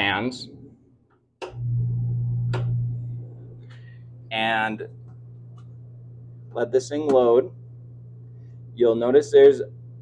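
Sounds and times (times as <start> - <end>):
fans humming: 0.0 - 10.0.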